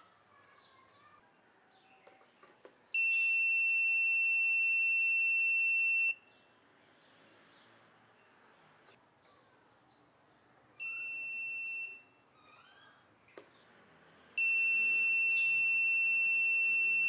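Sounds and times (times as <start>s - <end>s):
buzzer high beep: 14.4s - 17.0s.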